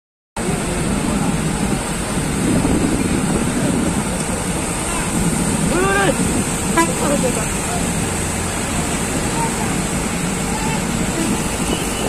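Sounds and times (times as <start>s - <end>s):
water gushing from dam spillway: 0.4s - 12.0s.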